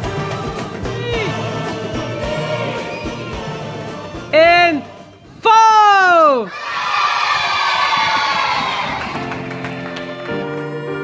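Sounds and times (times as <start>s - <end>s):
children cheering and shouting: 5.9s - 9.4s
loud falling cry: 6.5s - 9.2s.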